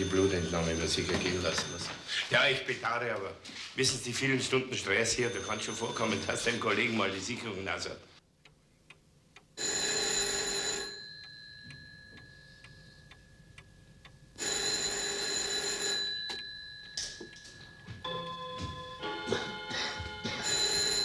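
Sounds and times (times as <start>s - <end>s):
pendulum clock ticking: 0.0s - 2.0s, 4.7s - 7.5s, 8.3s - 21.0s
telephone bell ringing: 0.0s - 2.3s, 5.1s - 7.0s, 9.6s - 13.0s, 14.4s - 21.0s.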